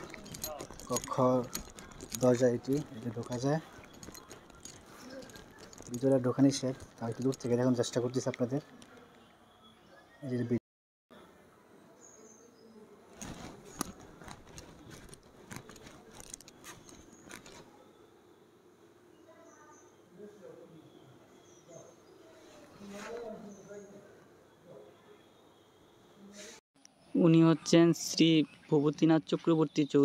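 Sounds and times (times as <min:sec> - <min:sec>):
man speaking: 0:00.0 - 0:01.6, 0:02.2 - 0:03.7, 0:05.9 - 0:08.7
light clicking and jingling: 0:00.0 - 0:09.2, 0:13.2 - 0:17.7.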